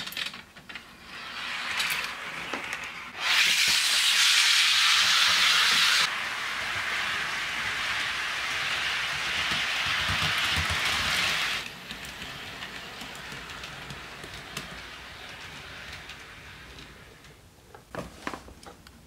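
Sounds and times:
model train wheels rolling on rails: 0:00.0 - 0:17.5.

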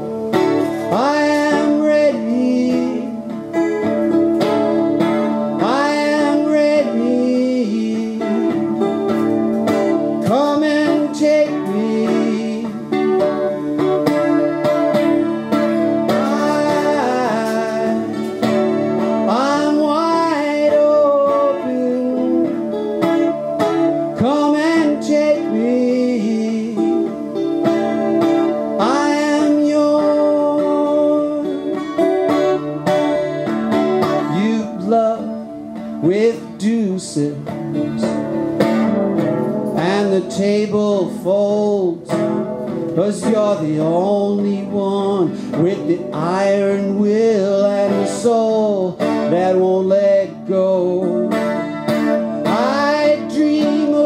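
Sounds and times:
man singing: 0:00.0 - 0:38.6, 0:39.6 - 0:54.0
acoustic guitar strumming: 0:00.0 - 0:54.0.

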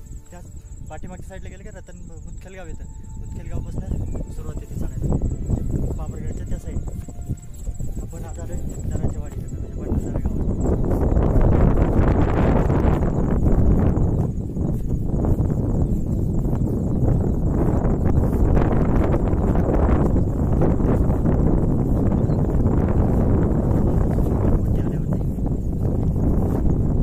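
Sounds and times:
wind buffeting microphone: 0:00.0 - 0:27.0.

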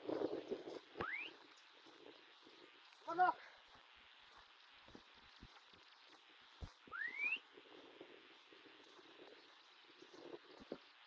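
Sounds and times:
whistle rising in pitch: 0:01.0 - 0:01.4, 0:06.9 - 0:07.4.

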